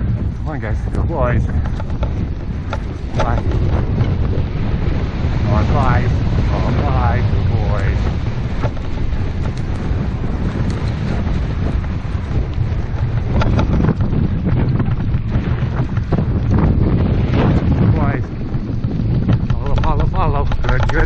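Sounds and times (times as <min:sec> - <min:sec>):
wind buffeting microphone: 0:00.0 - 0:21.0
light ticks: 0:08.0 - 0:09.9.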